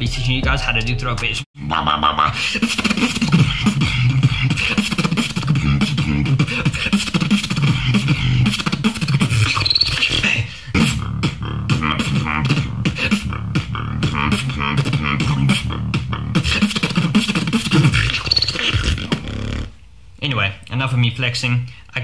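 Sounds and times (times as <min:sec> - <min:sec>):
buzzing throat bass: 0:00.0 - 0:09.7, 0:10.7 - 0:19.8
beatboxing percussive hits: 0:00.0 - 0:19.7.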